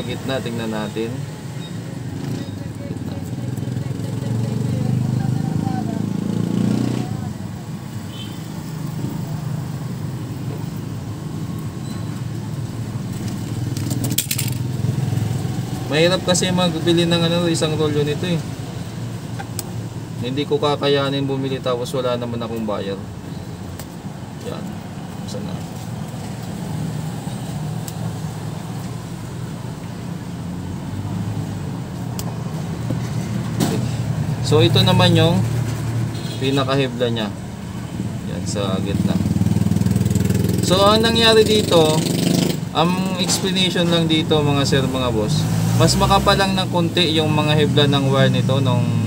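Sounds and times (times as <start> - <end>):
low rumble of traffic: 0.0 - 49.0.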